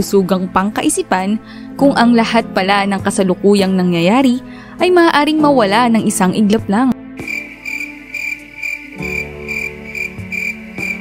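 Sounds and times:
soft background music: 0.0 - 11.0
cricket chirping: 7.2 - 11.0.

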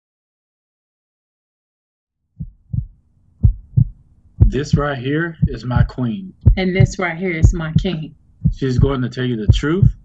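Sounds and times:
heartbeat thumps: 2.4 - 10.0
low steady tone: 2.4 - 10.0.

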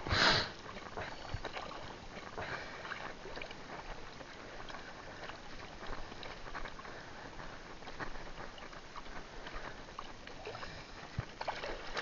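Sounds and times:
sea water splashing and lapping: 0.0 - 12.0.

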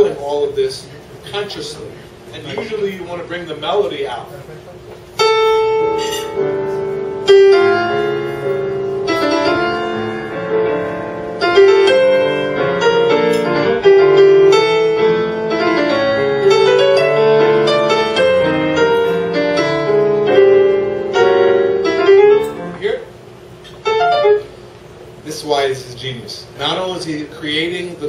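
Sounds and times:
solo jazz piano: 4.9 - 23.2, 23.8 - 24.6.

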